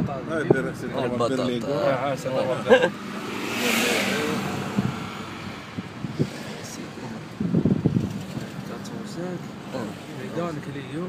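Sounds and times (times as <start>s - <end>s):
car driving slowly: 0.0s - 11.0s.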